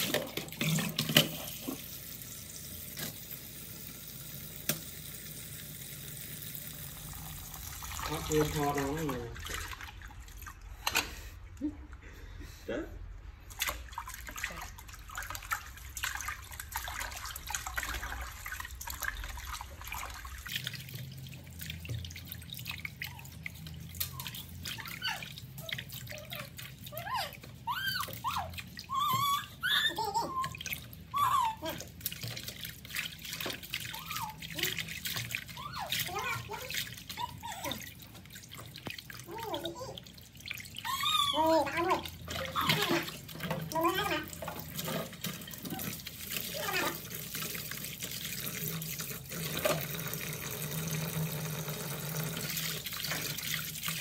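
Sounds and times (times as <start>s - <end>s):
water splashing in a basin: 0.0s - 11.6s, 13.2s - 54.0s
water dripping: 0.0s - 12.1s, 13.3s - 54.0s.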